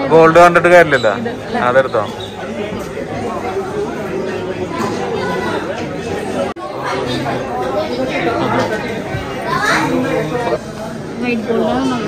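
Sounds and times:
crowd of voices talking: 0:00.0 - 0:12.0.

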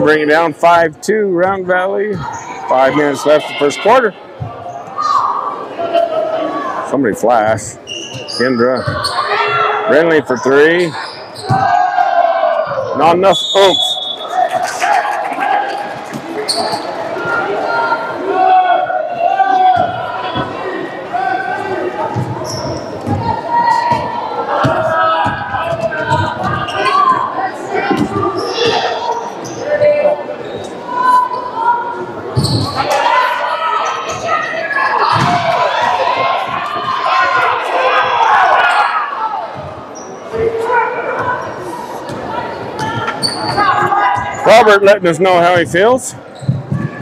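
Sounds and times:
people shouting: 0:11.4 - 0:30.2, 0:32.6 - 0:39.7, 0:40.3 - 0:44.8.

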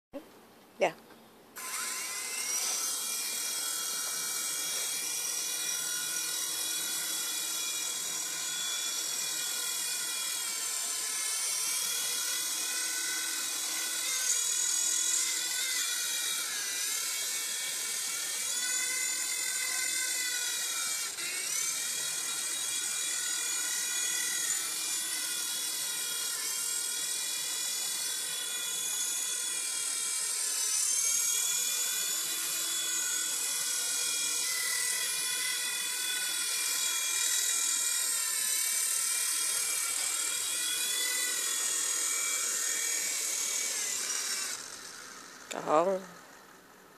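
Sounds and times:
rc helicopter whining: 0:01.6 - 0:46.9.

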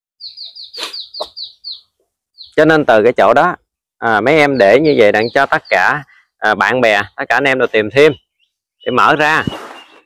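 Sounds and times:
bird chirping: 0:00.2 - 0:10.0.

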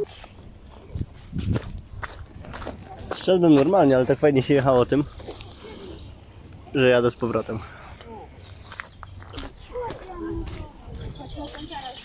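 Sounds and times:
footsteps on gravel: 0:00.0 - 0:06.6, 0:07.3 - 0:12.0
indistinct voices: 0:02.5 - 0:12.0.

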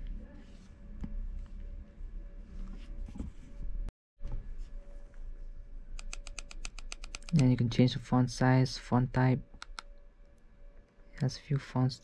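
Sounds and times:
e-reader buttons clicking: 0:06.0 - 0:07.4, 0:09.6 - 0:09.9.

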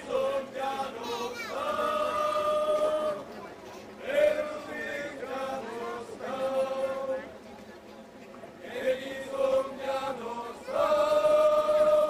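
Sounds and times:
men singing folk song together: 0:00.0 - 0:03.2, 0:04.0 - 0:07.2, 0:08.6 - 0:12.0.

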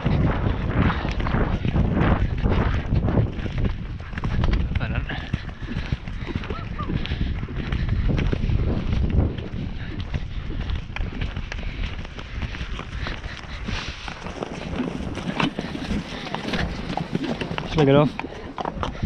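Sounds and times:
horses galloping on turf: 0:00.0 - 0:19.0.

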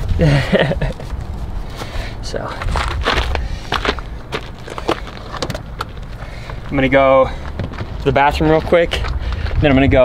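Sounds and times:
wind rumble on microphone: 0:00.0 - 0:04.0, 0:07.3 - 0:10.0
footsteps crunching on gravel: 0:01.0 - 0:10.0.

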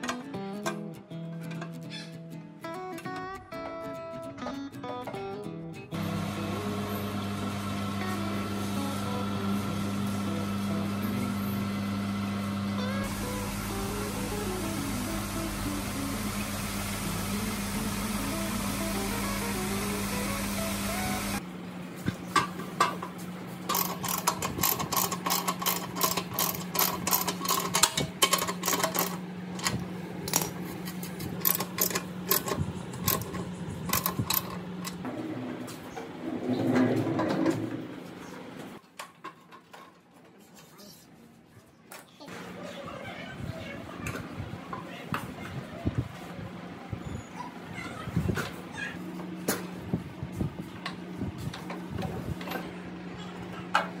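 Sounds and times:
steady hum: 0:07.9 - 0:23.0, 0:23.6 - 0:35.3.

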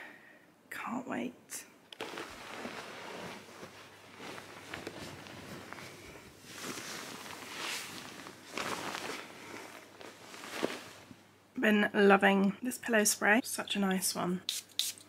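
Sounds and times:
bed sheets rustling: 0:02.0 - 0:11.3.

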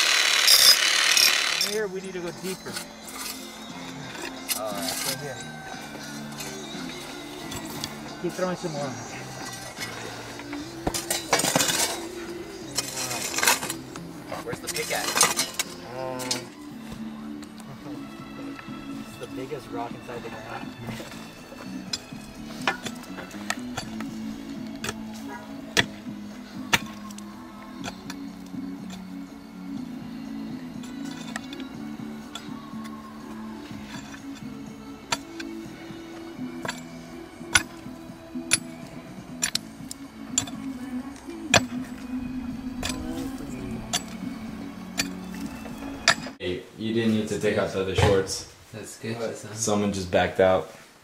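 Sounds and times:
metal tools striking rocks: 0:00.0 - 0:03.5, 0:04.1 - 0:08.8, 0:09.4 - 0:16.5, 0:20.8 - 0:29.2, 0:29.8 - 0:33.0, 0:33.7 - 0:46.4
background music with bass line: 0:01.6 - 0:46.4.

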